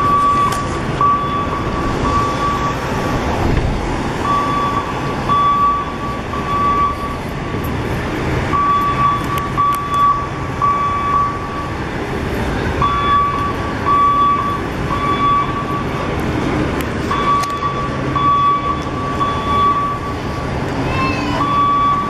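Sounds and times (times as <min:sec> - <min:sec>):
truck back-up alarm beeping: 0:00.0 - 0:03.3, 0:04.0 - 0:07.8, 0:08.4 - 0:22.0
city street traffic: 0:00.0 - 0:22.0.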